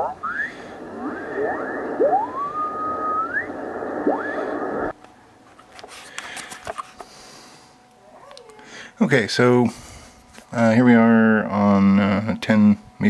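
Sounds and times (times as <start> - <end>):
garbled pitch-shifted voice: 0.0 - 4.9
radio static: 0.0 - 5.0
rising radio whistles: 0.0 - 5.0.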